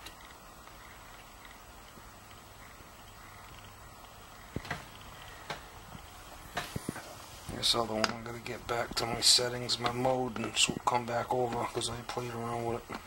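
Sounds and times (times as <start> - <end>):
faint low hum: 0.0 - 13.0.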